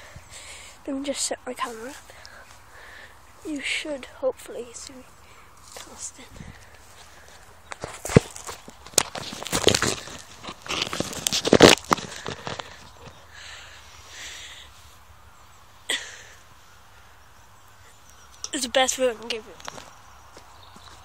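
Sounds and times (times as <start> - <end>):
knocks and scuffs: 5.6 - 13.2, 19.6 - 21.0.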